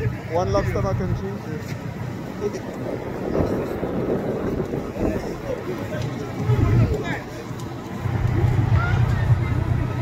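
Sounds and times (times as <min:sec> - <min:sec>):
indistinct voices of onlookers: 0:00.0 - 0:10.0
outdoor background noise: 0:00.0 - 0:10.0.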